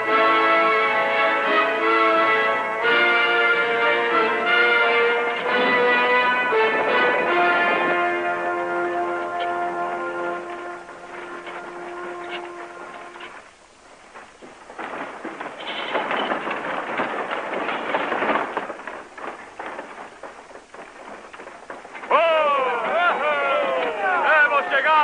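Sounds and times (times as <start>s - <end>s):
horses' hooves clattering: 0.0s - 25.0s
wagon wheels rumbling: 0.0s - 25.0s
musical chord: 0.1s - 13.4s
loud falling calls: 3.8s - 25.0s.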